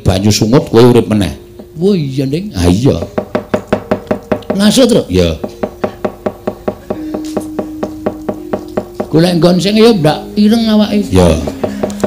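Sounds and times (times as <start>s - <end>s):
wooden knocker striking plates: 2.9s - 9.6s, 11.4s - 12.0s
held low note: 5.4s - 12.0s.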